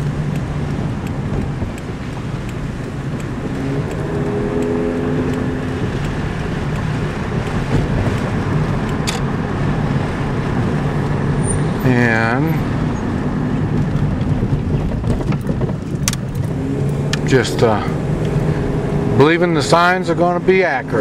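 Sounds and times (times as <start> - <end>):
vehicle engine and road noise: 0.0 - 21.0.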